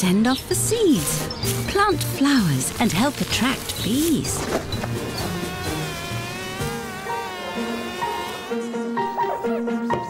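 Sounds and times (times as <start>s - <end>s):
light background music: 0.0s - 10.0s
cartoon bees buzzing: 2.6s - 9.5s.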